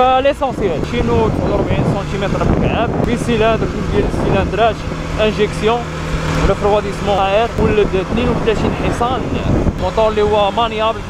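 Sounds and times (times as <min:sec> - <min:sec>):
man talking: 0:00.0 - 0:11.0
motorcycle engine humming: 0:00.0 - 0:11.0.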